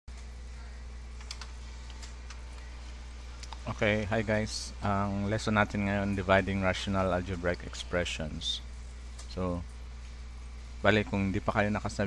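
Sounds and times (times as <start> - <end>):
low electrical hum: 0.1 - 12.0
quick clicks: 1.2 - 2.7.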